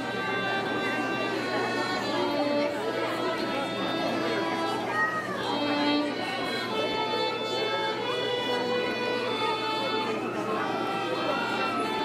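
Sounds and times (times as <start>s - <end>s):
murmur of voices: 0.0s - 12.0s
violins playing held notes: 0.0s - 12.0s.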